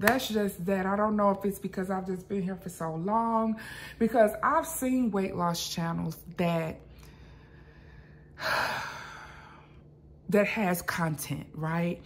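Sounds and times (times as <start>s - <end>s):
woman breathing in: 7.0s - 9.9s.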